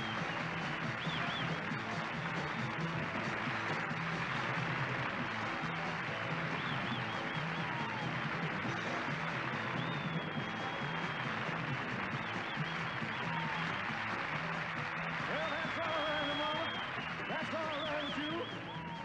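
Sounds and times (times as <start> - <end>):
rock band playing: 0.0 - 19.0
audience cheering and screaming: 5.6 - 19.0.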